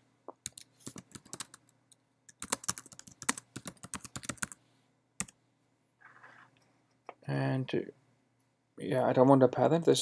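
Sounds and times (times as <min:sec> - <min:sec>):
typing on computer keyboard: 0:00.4 - 0:01.7, 0:02.3 - 0:04.6.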